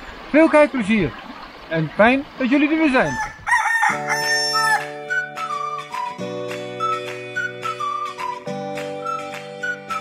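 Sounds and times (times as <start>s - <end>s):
rooster crowing: 3.0s - 5.0s
flute-like melody: 3.9s - 10.0s.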